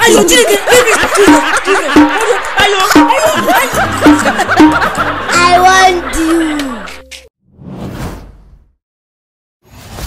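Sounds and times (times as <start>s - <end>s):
music: 1.2s - 7.3s.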